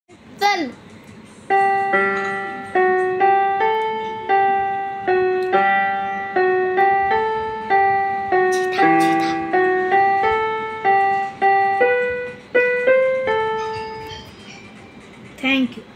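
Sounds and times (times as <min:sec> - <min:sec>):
mini keyboard melody: 0:01.1 - 0:15.1.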